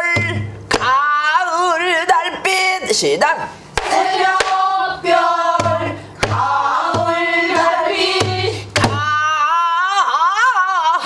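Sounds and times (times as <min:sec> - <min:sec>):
barrel drum strokes: 0:03.7 - 0:09.1.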